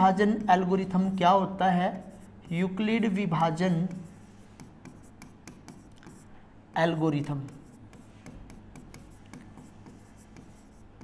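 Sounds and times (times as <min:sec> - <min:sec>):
stylus tapping and scratching screen: 0:00.0 - 0:11.0.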